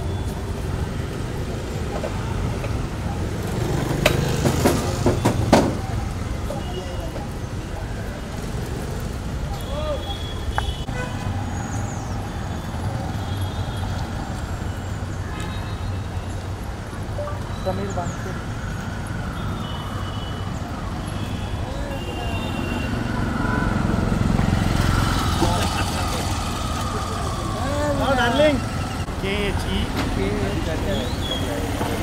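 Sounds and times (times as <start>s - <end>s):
traffic rumble: 0.0s - 32.0s.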